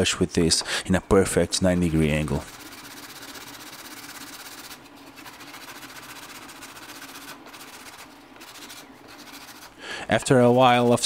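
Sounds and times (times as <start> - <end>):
sanding stick rasping on plastic: 1.3 - 11.0.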